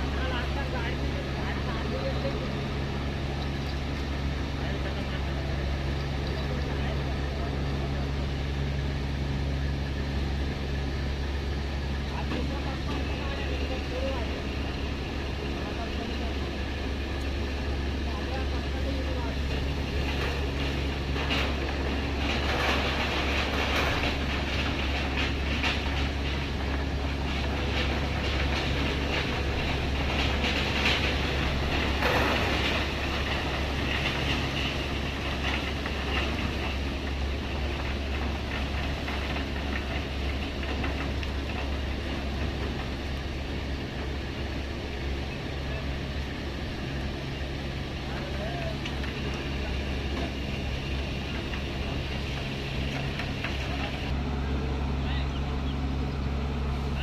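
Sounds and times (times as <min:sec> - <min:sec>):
heavy machinery drone: 0:00.0 - 0:57.0
rattling and clattering: 0:12.0 - 0:54.2.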